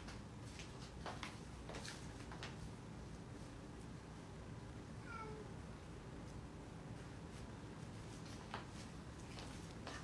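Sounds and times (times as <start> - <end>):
cat meowing: 5.0 - 5.6.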